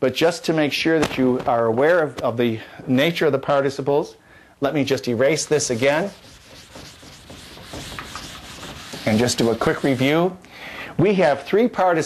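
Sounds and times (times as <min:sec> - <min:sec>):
eraser rubbing on board: 0:05.4 - 0:10.3.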